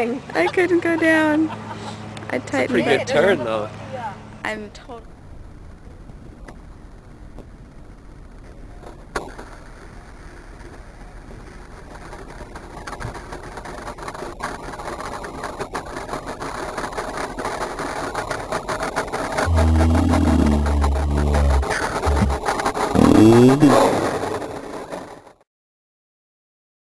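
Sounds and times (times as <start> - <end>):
loud low rumble: 19.4 - 23.7.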